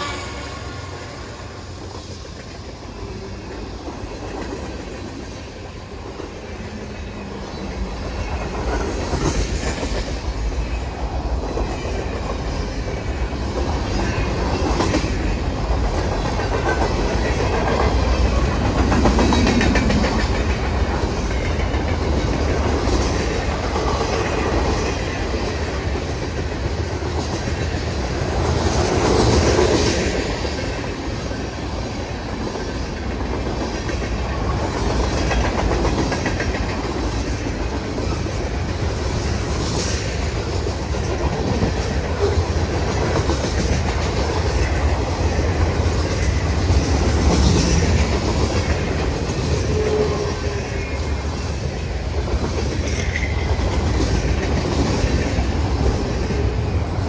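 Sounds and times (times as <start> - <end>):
freight train wheels on rails: 0.0 - 57.0.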